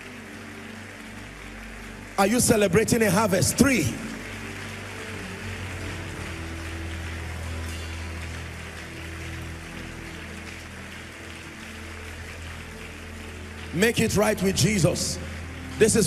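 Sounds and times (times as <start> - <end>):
soft music with held chords: 0.0 - 16.0.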